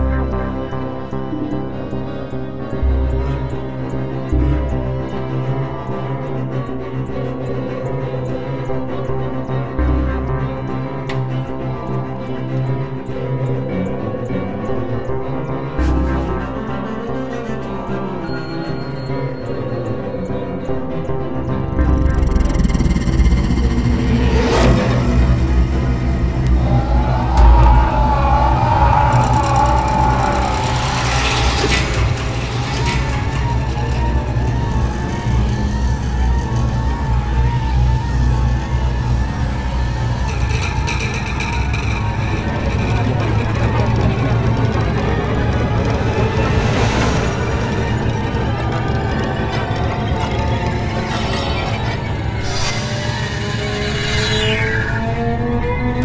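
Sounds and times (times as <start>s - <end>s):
deep rumbling drone: 19.8s - 56.0s
sweeping whooshes: 23.0s - 36.1s.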